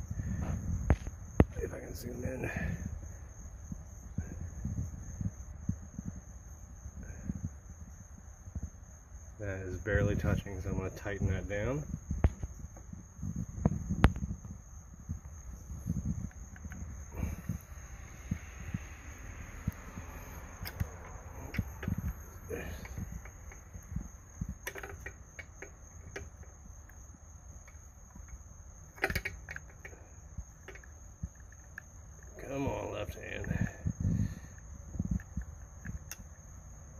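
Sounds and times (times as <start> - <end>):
light clicks and knocks of screw tightening: 19.6 - 23.9, 24.5 - 27.0, 27.6 - 32.4, 34.5 - 36.4.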